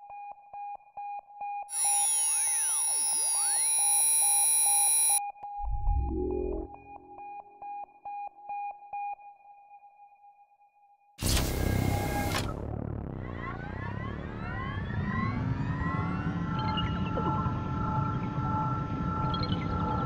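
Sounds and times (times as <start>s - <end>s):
thin high tone: 1.7s - 5.2s
rapid electronic beeping: 1.7s - 7.2s
sweeping gliding synth tones: 1.7s - 7.2s
low rising whoosh: 5.6s - 7.2s.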